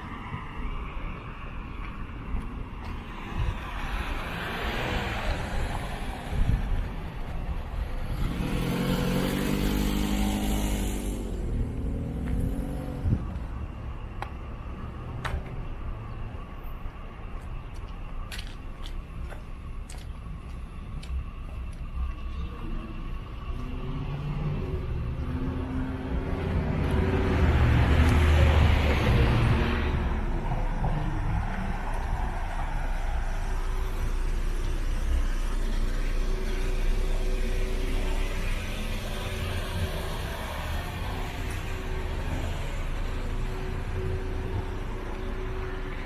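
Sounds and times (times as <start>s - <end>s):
traffic with low hum: 0.0s - 46.0s
car driving past: 8.0s - 13.4s.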